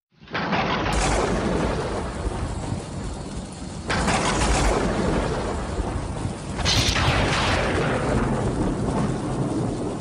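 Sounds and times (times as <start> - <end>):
steady rain: 0.1 - 10.0
rolling thunder: 0.2 - 10.0.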